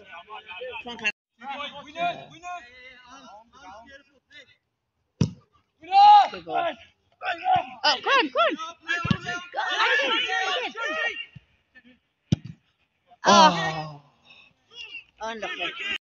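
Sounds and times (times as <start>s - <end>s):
men shouting and crying out: 5.8s - 11.5s, 13.2s - 14.1s.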